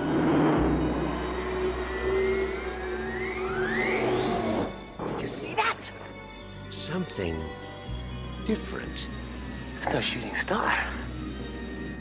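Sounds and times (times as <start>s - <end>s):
faint rising glide: 0.0s - 5.0s
low drone: 0.0s - 6.7s.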